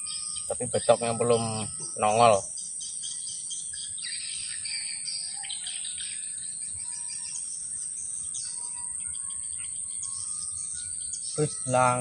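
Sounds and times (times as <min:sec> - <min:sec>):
birds chirping and calling: 0:00.0 - 0:12.0
high insect drone: 0:00.0 - 0:12.0.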